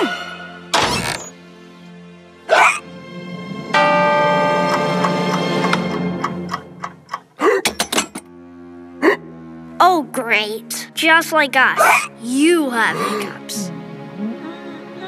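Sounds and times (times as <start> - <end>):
background music: 0.0 - 15.0
cartoon bear hiccups: 2.5 - 2.8, 11.8 - 12.2
alarm clock bells ringing: 3.8 - 6.1.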